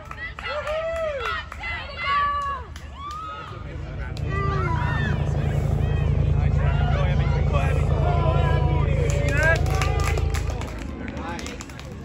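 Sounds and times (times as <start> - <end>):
vehicle engine rumbling: 2.9 - 12.0.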